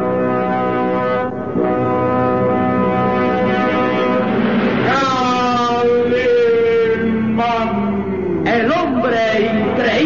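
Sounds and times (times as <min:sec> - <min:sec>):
brass fanfare: 0:00.0 - 0:07.3.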